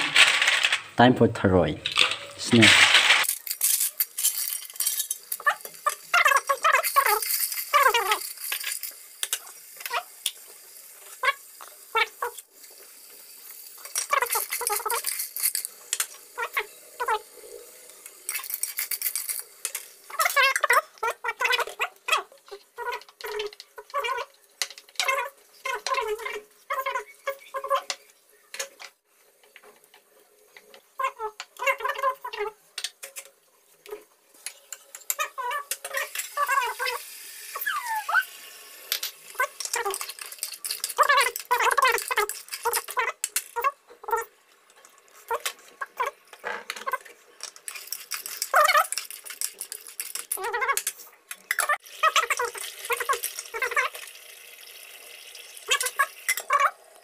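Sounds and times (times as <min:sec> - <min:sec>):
snail shells clattering in metal pot: 0:00.0 - 0:01.0, 0:01.8 - 0:29.0, 0:34.5 - 0:37.0, 0:38.5 - 0:54.1, 0:55.6 - 0:56.8.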